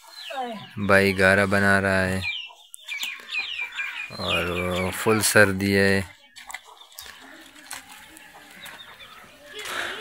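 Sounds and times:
chickens calling: 0:00.0 - 0:10.0.

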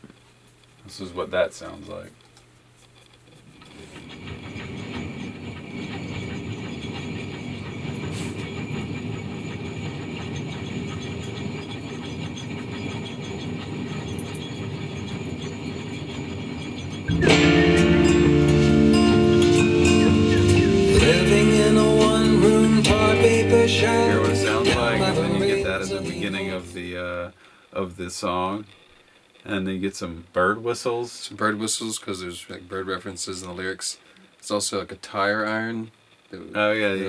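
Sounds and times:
junk rattling in a shaken drum: 0:03.4 - 0:26.7
song with pitched instruments: 0:17.0 - 0:26.8.

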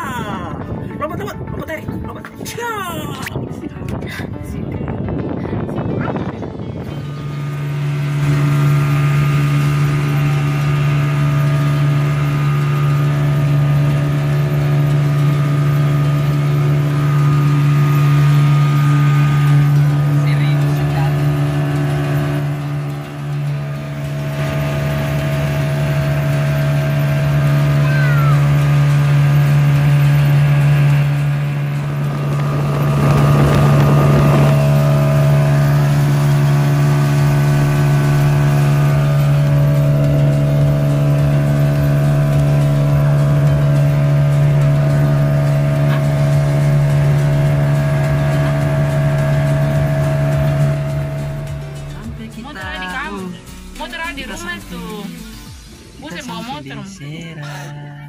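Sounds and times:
outboard motor running: 0:00.0 - 0:58.0.

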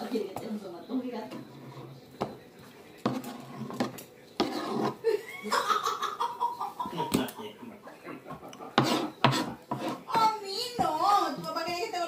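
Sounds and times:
knife scraping cutting board: 0:01.3 - 0:02.0, 0:03.0 - 0:05.0, 0:08.7 - 0:10.3.

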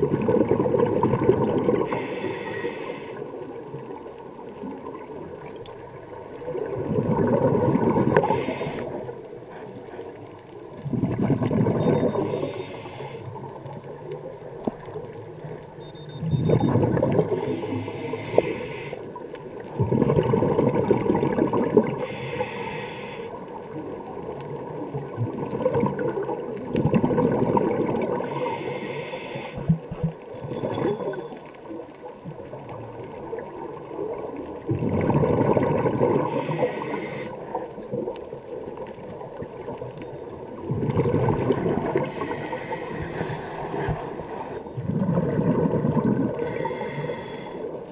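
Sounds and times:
bubbling exhalation underwater: 0:00.0 - 0:02.0, 0:06.5 - 0:08.3, 0:10.8 - 0:12.3, 0:19.8 - 0:22.0, 0:25.0 - 0:28.4, 0:34.6 - 0:36.4, 0:40.6 - 0:42.2, 0:44.8 - 0:46.4
hissing inhalation through regulator: 0:01.8 - 0:03.4, 0:08.0 - 0:09.1, 0:12.1 - 0:13.4, 0:17.3 - 0:19.2, 0:21.9 - 0:23.4, 0:28.0 - 0:29.9, 0:36.2 - 0:37.6, 0:42.0 - 0:44.6, 0:46.3 - 0:47.9.

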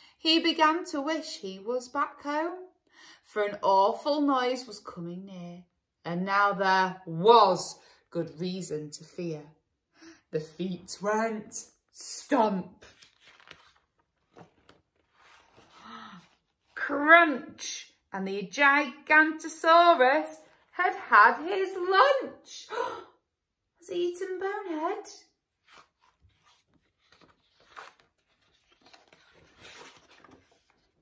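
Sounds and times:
paper rustling: 0:12.8 - 0:16.8, 0:25.5 - 0:31.0.

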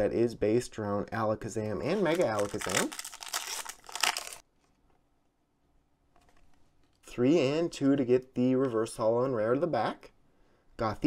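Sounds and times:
foil wrapper crinkling: 0:01.9 - 0:04.4.

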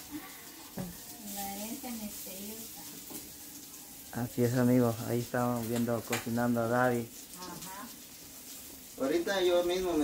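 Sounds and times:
patties sizzling in oil: 0:00.0 - 0:10.0.

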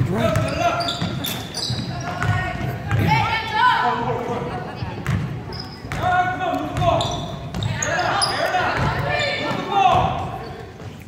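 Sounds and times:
spectators chatting: 0:00.0 - 0:11.0
basketball bouncing on hardwood floor: 0:00.3 - 0:03.2.

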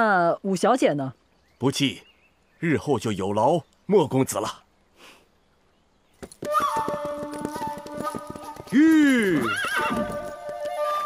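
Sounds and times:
hooves clip-clopping: 0:06.2 - 0:11.0
background music: 0:06.4 - 0:11.0
horse whinnying: 0:07.4 - 0:10.4.

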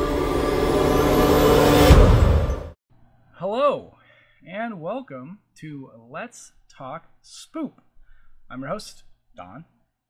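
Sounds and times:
low boom: 0:00.0 - 0:02.8
noise riser: 0:00.0 - 0:02.8
spooky music sting: 0:00.0 - 0:02.8.

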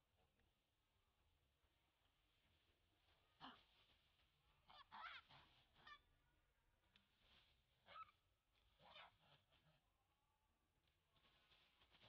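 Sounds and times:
monkey screaming: 0:04.7 - 0:06.0.

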